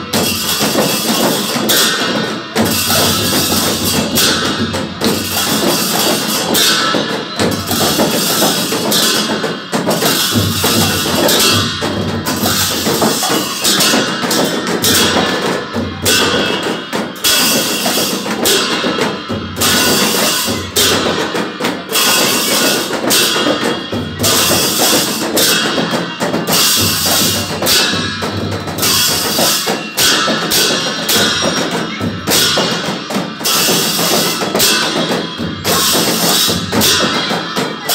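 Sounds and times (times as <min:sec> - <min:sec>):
barrel drums beaten: 0:00.0 - 0:37.9
hand cymbals clashing: 0:00.0 - 0:37.9.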